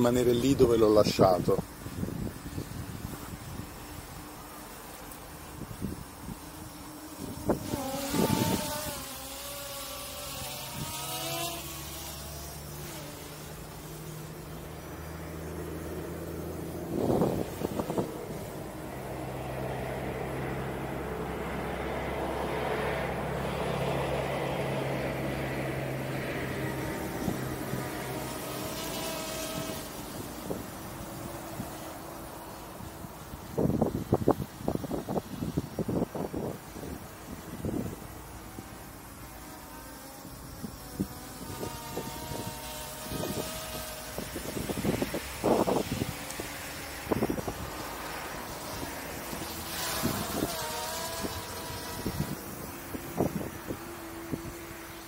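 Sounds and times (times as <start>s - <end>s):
wind buffeting microphone: 0.0s - 12.1s, 16.4s - 18.9s, 32.6s - 38.7s, 40.2s - 55.0s.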